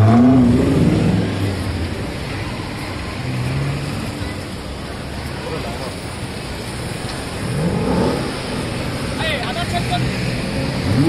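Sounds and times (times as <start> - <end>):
sports car engine revving: 0.0 - 1.9, 7.3 - 8.8, 10.0 - 11.0
traffic noise: 0.0 - 11.0.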